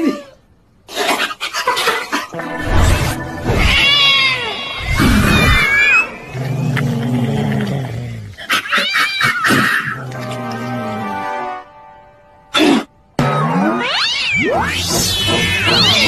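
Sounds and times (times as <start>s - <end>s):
cat yowling angrily: 8.5s - 10.0s.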